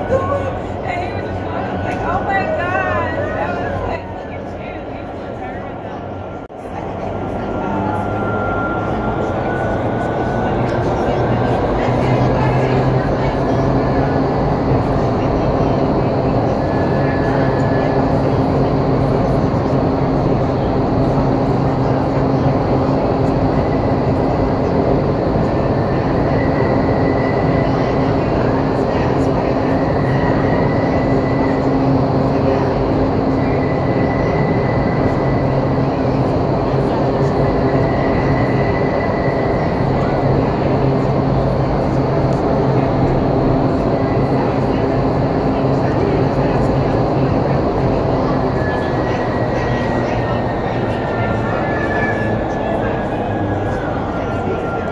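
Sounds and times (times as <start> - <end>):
low fan hum: 0.0 - 54.9.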